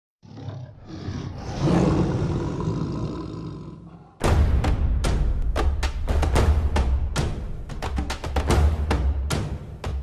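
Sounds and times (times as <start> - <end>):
lion growling: 0.2 - 4.2
lion roaring: 0.2 - 4.2.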